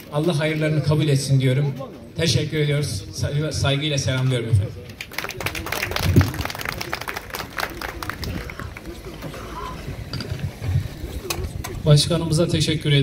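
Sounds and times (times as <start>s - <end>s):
voices: 0.0s - 13.0s
audience applauding: 5.0s - 9.2s.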